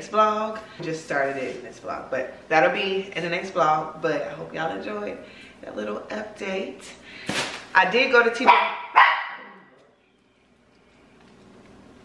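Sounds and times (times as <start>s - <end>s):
dog bark: 8.5s - 9.6s.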